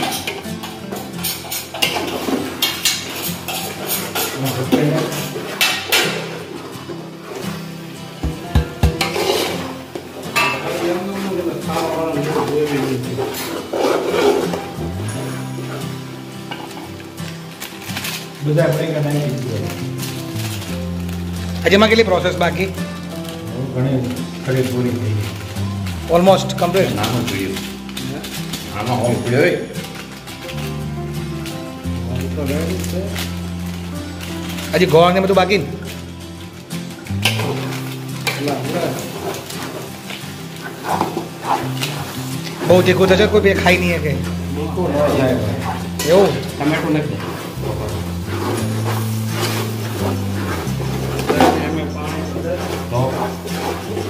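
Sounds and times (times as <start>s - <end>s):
metal spatula scraping a pot: 0.0s - 6.3s, 9.0s - 9.8s, 12.2s - 15.8s, 37.2s - 42.9s, 45.3s - 54.0s
background music: 0.0s - 54.0s
food sizzling: 0.0s - 54.0s
spoon knocking pot side: 8.2s - 9.2s
spoon stirring thick mixture: 8.2s - 18.4s, 37.2s - 54.0s.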